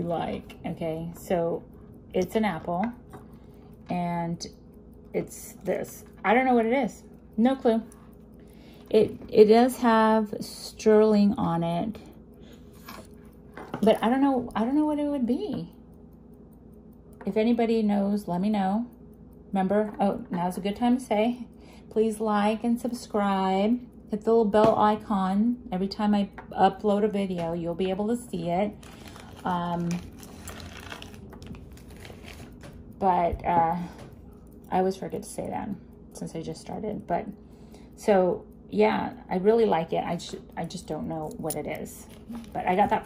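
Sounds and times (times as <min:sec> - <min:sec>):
low room hum: 0:00.0 - 0:43.0
small jewelry clicking: 0:27.2 - 0:33.2, 0:39.6 - 0:43.0.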